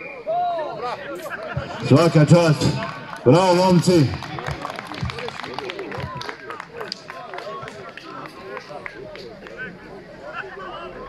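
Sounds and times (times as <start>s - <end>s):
crowd talking: 0.0s - 11.0s.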